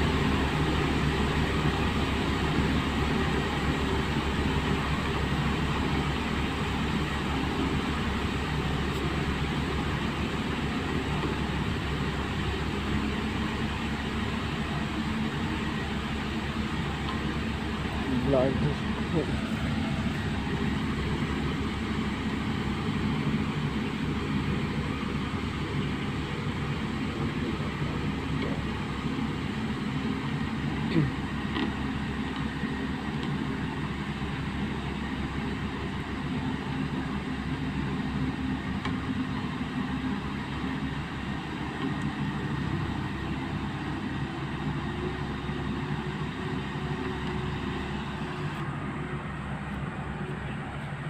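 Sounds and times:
road and wind noise: 0.0s - 51.0s
vehicle engine running: 0.0s - 51.0s.

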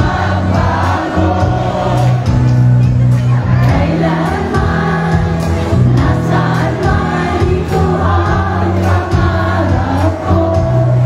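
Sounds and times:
audience singing along: 0.0s - 11.0s
band playing slow ballad: 0.0s - 11.0s
singers on stage: 0.0s - 11.0s.

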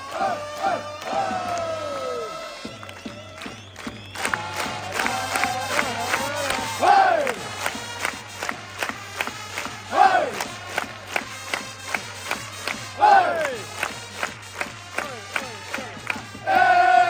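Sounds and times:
crowd chanting to a beat: 0.0s - 2.5s, 4.2s - 7.8s, 9.8s - 10.9s, 13.0s - 13.8s, 15.8s - 17.0s
crowd shouting oi: 0.0s - 2.6s, 4.3s - 7.4s, 9.9s - 10.4s, 13.0s - 13.6s, 16.4s - 17.0s.

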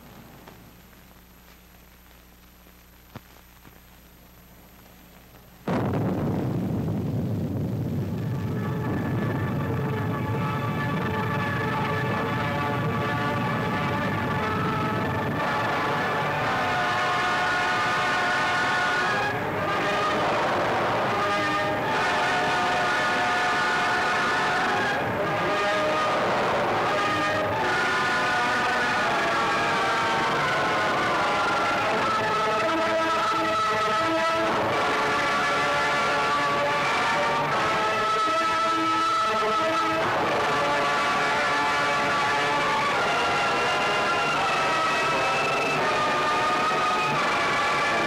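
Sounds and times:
atomic bomb blast rumble: 5.7s - 11.6s.

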